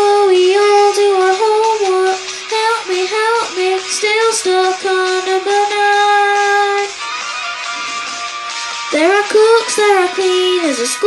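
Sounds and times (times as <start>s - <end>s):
boy singing into microphone: 0.0s - 7.0s, 8.9s - 11.0s.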